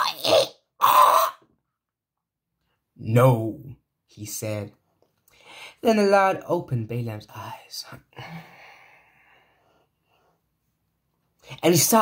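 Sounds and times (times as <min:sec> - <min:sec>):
man making non-word vocal sounds: 0:00.0 - 0:01.4.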